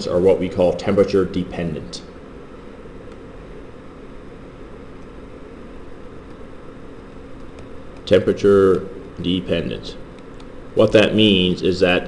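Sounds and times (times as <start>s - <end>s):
low room hum and hiss: 0.0s - 12.0s.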